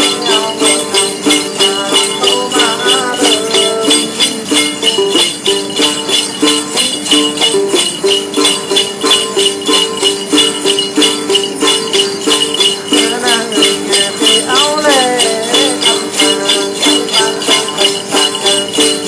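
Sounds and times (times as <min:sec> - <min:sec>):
jingle bells shaken: 0:00.0 - 0:19.0
person singing wavering line: 0:00.0 - 0:19.0
plucked long-necked lute: 0:00.0 - 0:19.0.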